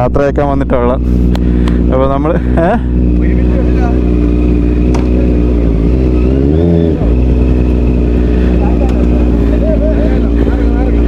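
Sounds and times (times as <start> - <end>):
motorcycle engine idling: 0.0 - 11.0
motorcycle throttle blip: 4.8 - 5.4, 8.7 - 9.3.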